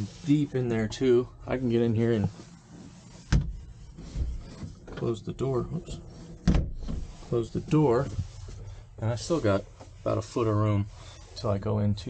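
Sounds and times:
cabinet door closing thuds: 0:06.4 - 0:07.0.

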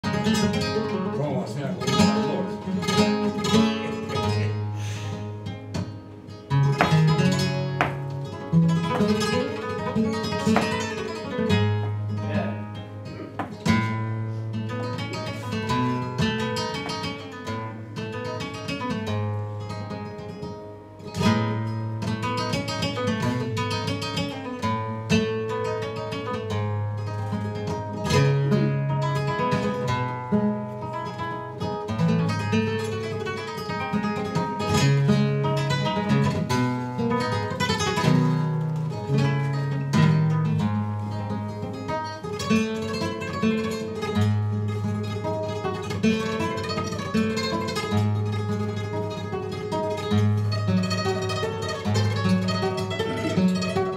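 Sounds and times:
flamenco guitar playing: 0:00.0 - 0:53.9.

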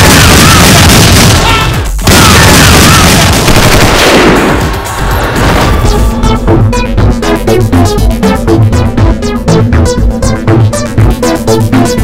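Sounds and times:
automatic gunfire: 0:02.1 - 0:04.7.

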